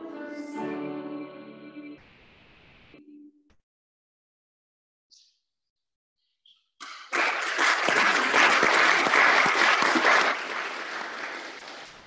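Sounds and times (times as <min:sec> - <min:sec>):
congregation applauding: 0:06.8 - 0:12.0.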